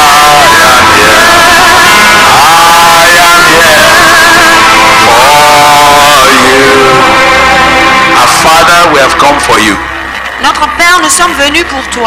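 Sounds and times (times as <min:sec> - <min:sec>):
voices singing worship song: 0:00.0 - 0:09.9.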